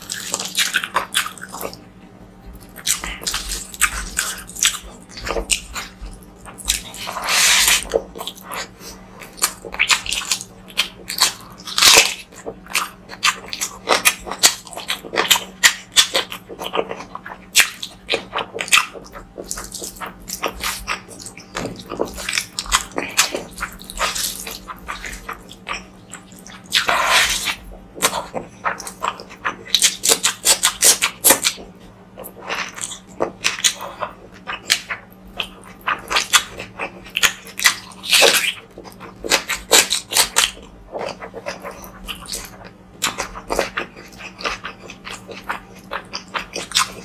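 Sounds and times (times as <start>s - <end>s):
wet chewing: 0.0s - 47.0s.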